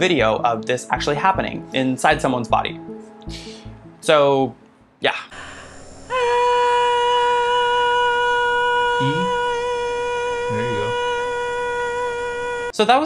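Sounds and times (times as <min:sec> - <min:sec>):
person holding high-pitched vocal tone: 0:09.0 - 0:09.5, 0:10.5 - 0:11.1.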